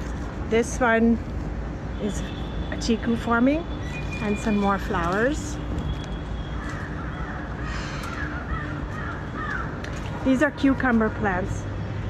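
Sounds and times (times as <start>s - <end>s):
birds calling: 6.2s - 10.2s.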